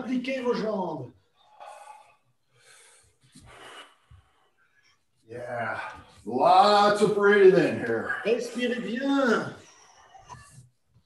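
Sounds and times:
man breathing with exertion: 1.5s - 4.6s.

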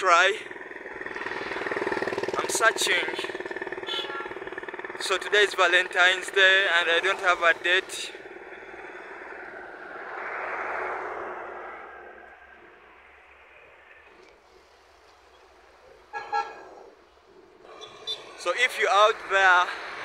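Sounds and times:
vehicle passing: 0.0s - 20.0s
vehicle horn toot: 3.8s - 4.4s, 16.1s - 16.6s.

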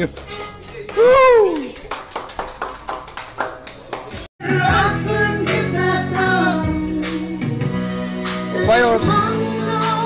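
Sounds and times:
people clapping: 0.0s - 4.3s.

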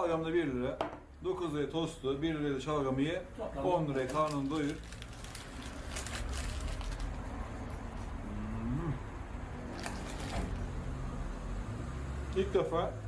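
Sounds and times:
crunchy biting and chewing: 4.2s - 9.0s, 9.6s - 10.6s
man humming mm: 8.2s - 9.3s.

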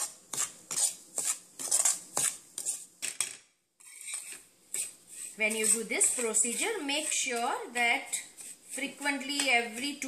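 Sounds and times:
spatula scraping a pan: 0.0s - 3.0s, 3.8s - 10.0s.

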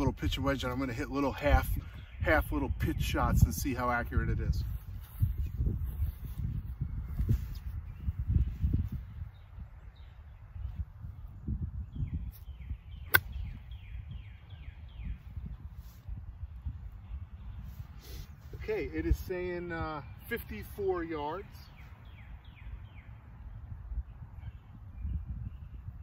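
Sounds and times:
wind on microphone: 0.0s - 20.2s, 21.6s - 26.0s
golf club striking ball: 13.1s - 13.6s.

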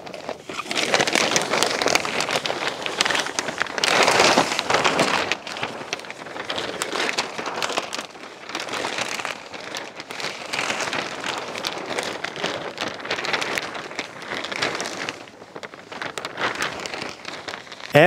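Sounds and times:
plastic sheet rustling and crackling: 0.0s - 18.0s.

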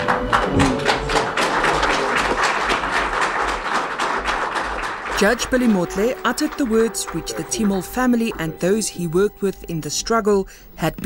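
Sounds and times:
crowd applauding: 0.0s - 9.3s.

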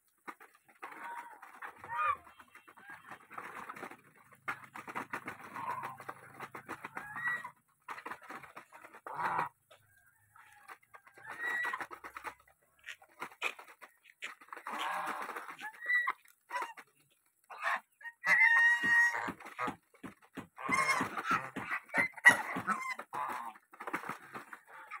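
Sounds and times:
geese bills clattering in feed: 0.0s - 25.0s
geese calling: 0.4s - 4.0s, 17.5s - 19.8s, 20.6s - 23.6s.

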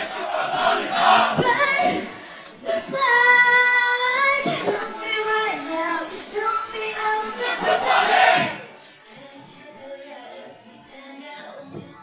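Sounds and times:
female group singing: 0.0s - 12.0s.

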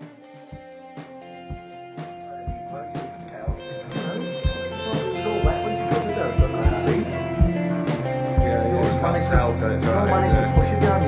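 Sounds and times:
bass guitar: 0.0s - 11.0s
guitar notes held: 0.0s - 11.0s
low drum thump: 5.4s - 7.6s.

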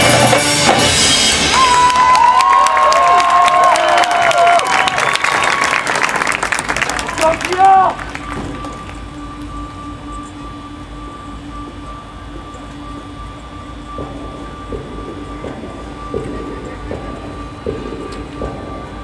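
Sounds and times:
low steady rumble: 4.7s - 19.0s
soft sustained held tone: 7.1s - 19.0s
soft percussion hits: 8.0s - 19.0s.

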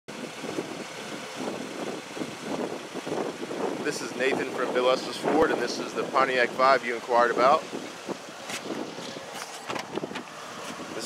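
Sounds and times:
wind blowing across microphone: 0.1s - 11.0s.

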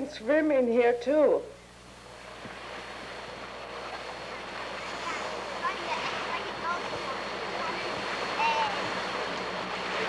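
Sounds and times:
choppy lake water: 2.1s - 10.0s.

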